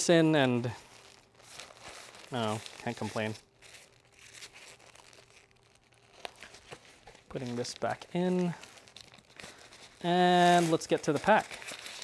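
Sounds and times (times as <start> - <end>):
fabric bag rustling: 0.6 - 12.0.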